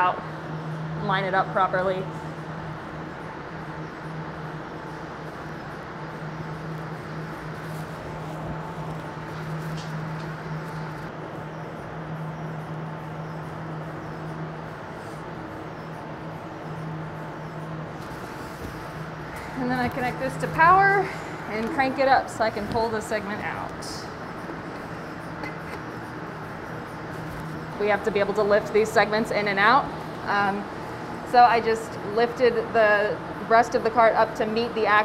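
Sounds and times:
machinery humming: 0.0s - 35.0s.

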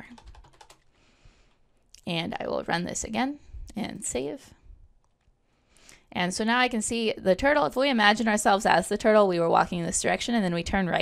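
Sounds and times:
computer keyboard keystrokes: 0.0s - 0.9s.

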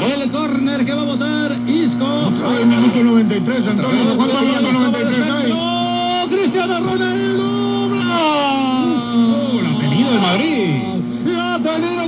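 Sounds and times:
man commentating over radio speaker: 0.0s - 8.4s, 9.4s - 12.0s
steady low hum: 0.0s - 12.0s.

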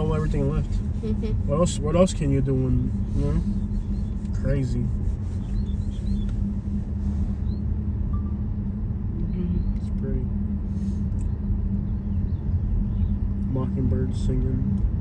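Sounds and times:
car driving slowly: 0.0s - 15.0s
birds chirping: 2.7s - 6.4s, 11.2s - 14.1s.

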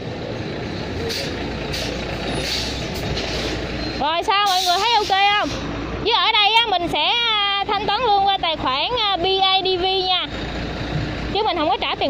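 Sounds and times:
truck engine rumble: 0.0s - 12.0s.

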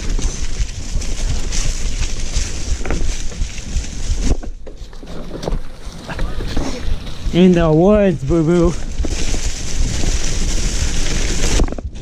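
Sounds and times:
bike rattling: 0.0s - 12.0s
tyres rolling through dry leaves: 0.0s - 12.0s
wind rumble on microphone: 0.0s - 12.0s.

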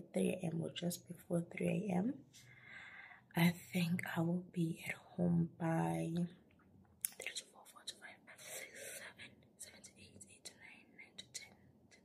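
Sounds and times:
breathy breaths: 2.4s - 3.3s.

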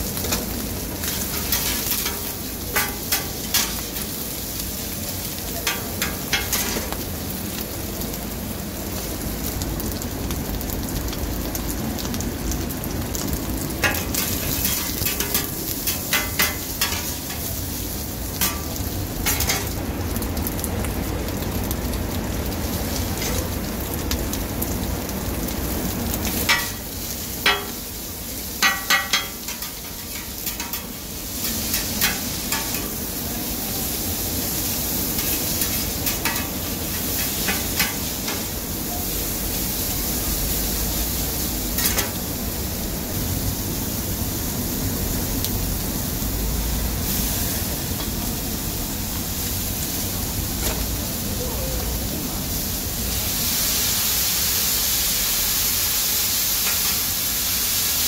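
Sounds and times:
food sizzling on a griddle: 0.0s - 58.0s.

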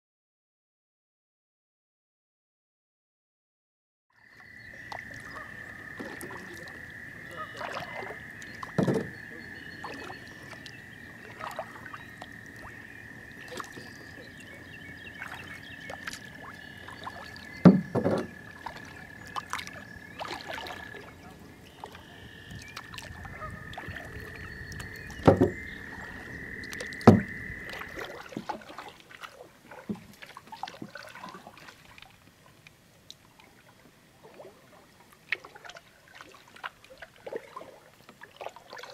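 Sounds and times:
frogs trilling: 4.1s - 29.0s
soft water noise: 4.1s - 38.9s
birds chirping: 4.2s - 28.4s
paddle knocking against hull: 7.5s - 10.6s, 15.2s - 20.8s, 21.8s - 31.8s.

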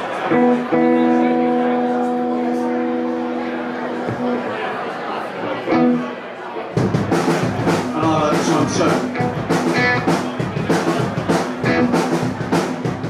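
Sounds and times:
rock band playing: 0.0s - 5.0s, 5.6s - 13.0s
electric guitar chord ringing: 0.3s - 4.4s.

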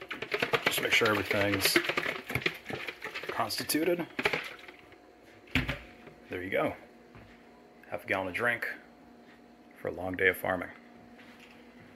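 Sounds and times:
ice rattling in plastic jug: 0.0s - 4.8s.

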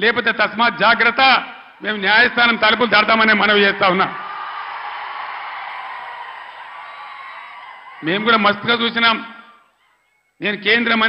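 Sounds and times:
crowd cheering and shouting: 1.8s - 10.4s.

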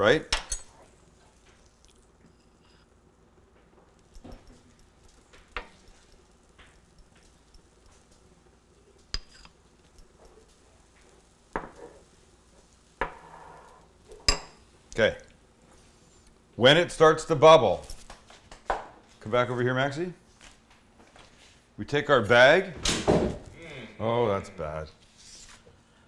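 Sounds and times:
faint butter sizzle: 0.0s - 17.5s.

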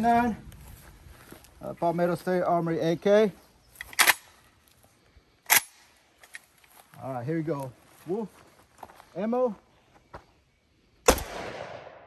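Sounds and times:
rifle action clacks: 3.8s - 4.3s.

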